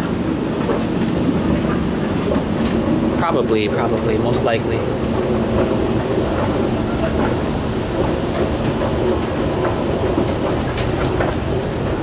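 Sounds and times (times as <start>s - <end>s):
escalator running: 0.0s - 12.0s.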